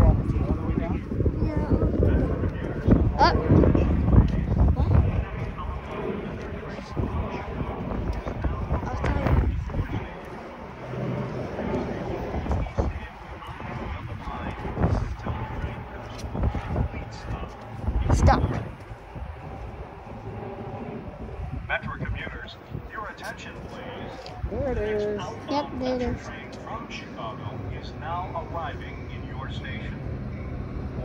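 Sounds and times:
wind rumbling on microphone: 0.0s - 31.0s.

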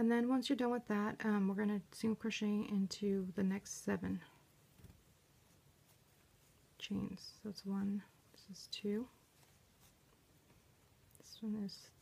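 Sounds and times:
yarn and crochet hook rustling: 0.6s - 12.0s.

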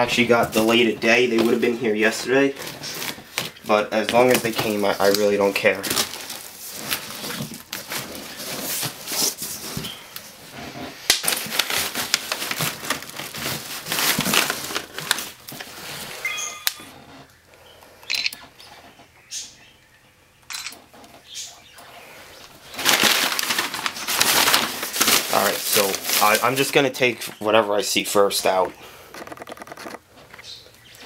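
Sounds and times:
packing paper rustling: 0.0s - 16.9s, 22.3s - 30.6s.

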